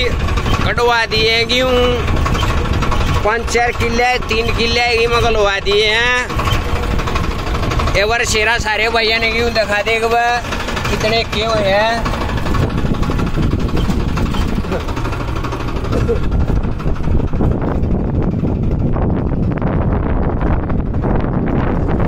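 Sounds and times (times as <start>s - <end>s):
tractor engine running: 0.0s - 22.0s.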